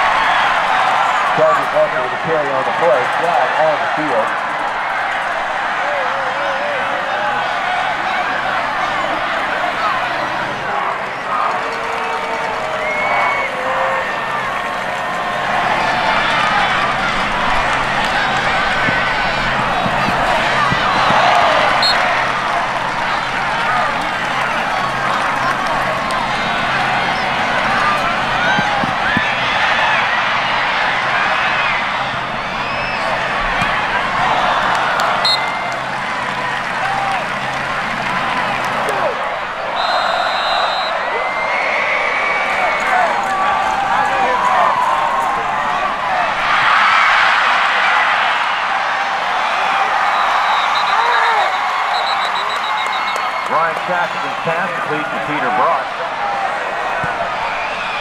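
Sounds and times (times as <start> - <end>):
stadium crowd yelling and cheering: 0.0 - 58.0.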